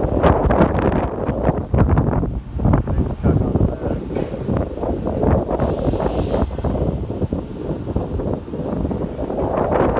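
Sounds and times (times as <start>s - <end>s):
wind buffeting microphone: 0.0s - 9.9s
short hiss: 5.6s - 6.7s.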